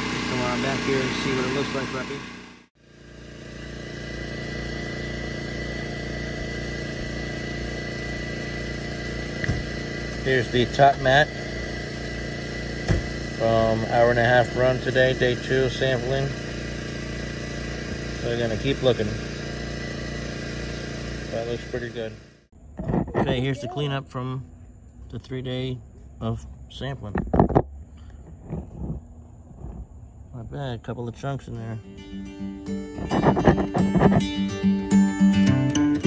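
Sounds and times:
small engine idling: 0.0s - 22.7s, 31.1s - 36.0s
thin high whine: 31.6s - 35.6s.

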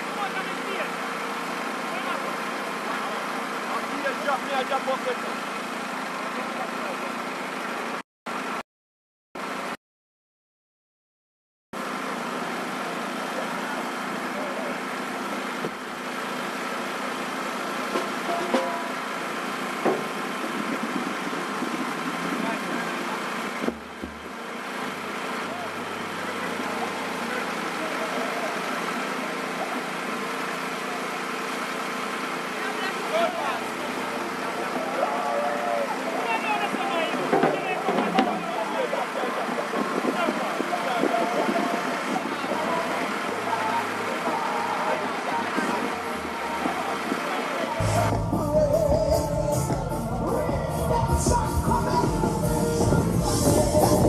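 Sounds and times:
voices: 0.0s - 7.6s, 12.2s - 54.0s
vehicle engines humming: 0.0s - 8.6s, 11.8s - 54.0s.

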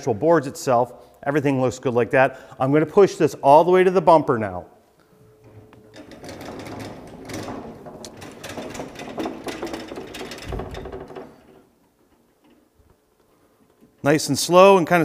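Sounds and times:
rattle of rolling casters: 5.4s - 12.8s.

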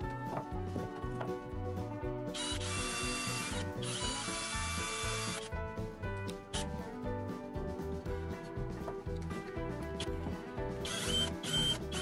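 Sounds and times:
background music with beat: 0.0s - 12.0s
cordless drill boring into wood: 2.4s - 5.5s, 10.8s - 12.0s.

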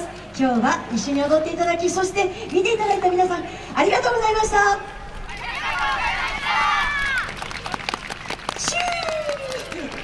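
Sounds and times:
audience handclaps: 6.9s - 10.0s.

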